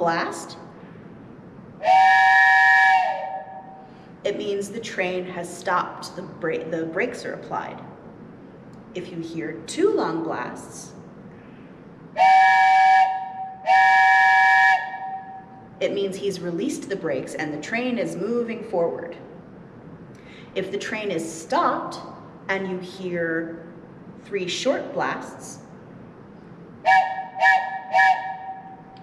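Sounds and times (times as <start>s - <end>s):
wooden train whistle blasts: 1.8s - 3.9s, 12.2s - 15.6s, 26.8s - 29.0s.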